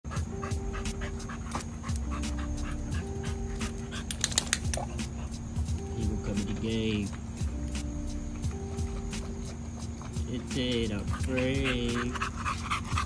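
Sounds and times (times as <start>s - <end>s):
dog panting: 0.1s - 7.2s, 8.4s - 13.0s.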